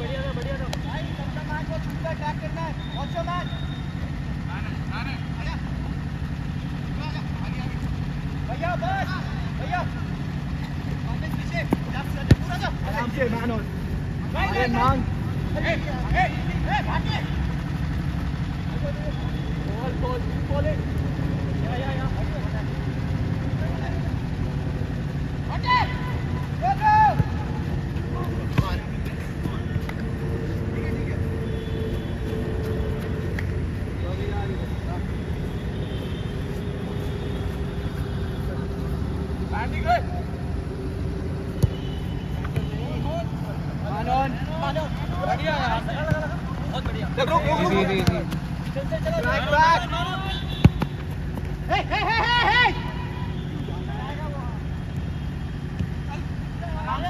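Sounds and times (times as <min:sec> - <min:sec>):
ball being kicked: 0:11.4 - 0:12.7, 0:27.0 - 0:27.5, 0:28.2 - 0:30.0, 0:41.5 - 0:42.8, 0:47.8 - 0:48.5, 0:50.5 - 0:51.5
players shouting: 0:25.4 - 0:33.4, 0:34.0 - 0:54.8.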